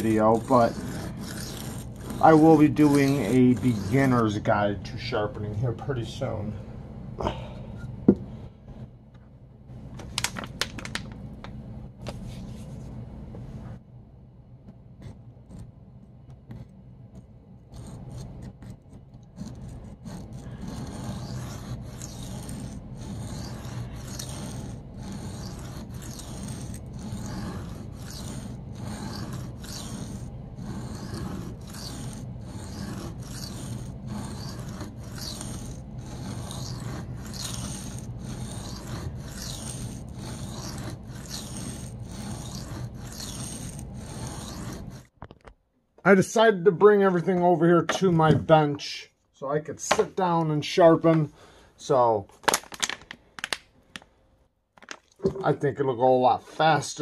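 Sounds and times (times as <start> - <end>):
knife blade rasping on sharpening stone: 0.0 - 4.3, 19.4 - 45.0.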